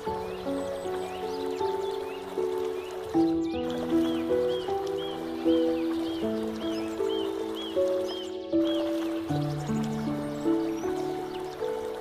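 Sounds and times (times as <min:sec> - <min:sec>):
slow piano music: 0:00.0 - 0:12.0.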